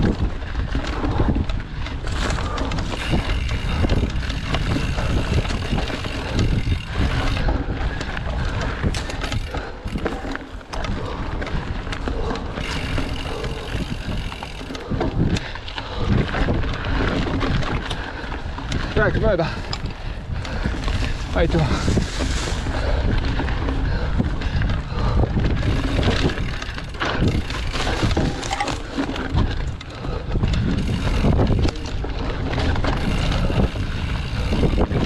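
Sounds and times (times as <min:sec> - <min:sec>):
tyres on dirt and leaves: 0:00.0 - 0:24.4, 0:25.4 - 0:34.9
bike rattling over bumps: 0:00.0 - 0:35.0
wind buffeting microphone: 0:00.0 - 0:35.0.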